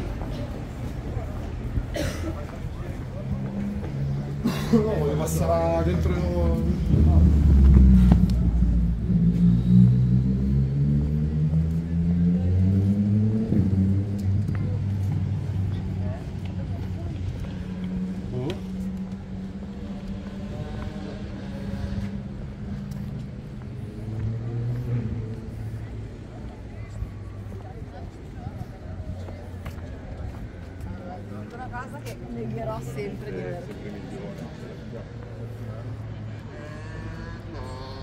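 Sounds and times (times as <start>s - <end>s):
people talking: 0.0s - 9.8s, 13.4s - 38.0s
vehicle engine accelerating: 2.4s - 38.0s.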